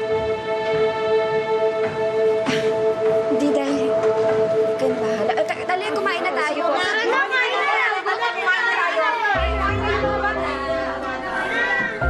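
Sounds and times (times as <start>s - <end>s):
background music: 0.0s - 12.0s
people talking: 3.3s - 4.0s, 4.8s - 12.0s.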